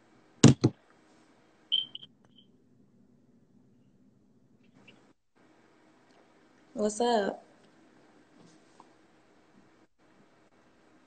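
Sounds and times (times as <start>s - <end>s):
phone knocking against microphone: 0.4s - 0.7s
high-pitched chirp: 1.7s - 2.5s.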